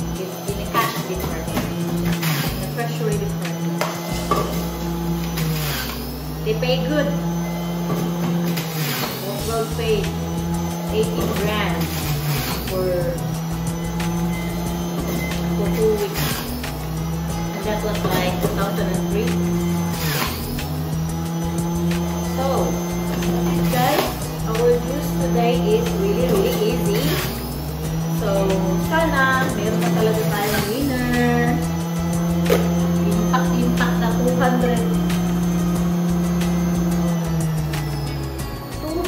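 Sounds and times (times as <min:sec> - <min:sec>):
background music: 0:00.0 - 0:39.0
juicer motor hum: 0:00.0 - 0:39.0.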